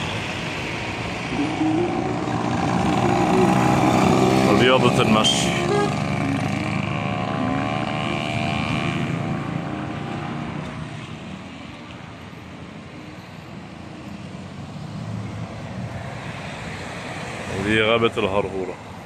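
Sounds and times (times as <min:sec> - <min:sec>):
road traffic noise: 0:00.0 - 0:19.0
vehicle engine hum: 0:00.0 - 0:19.0.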